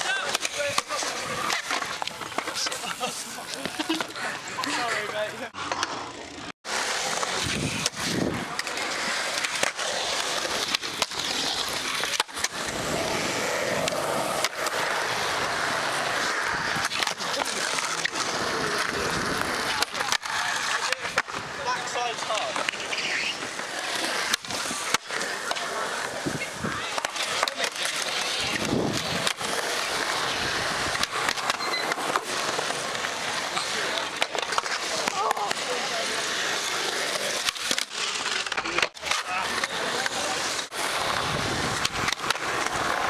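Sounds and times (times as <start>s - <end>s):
skateboard wheels rolling on concrete: 0.0s - 43.0s
skateboard clicks: 5.6s - 43.0s.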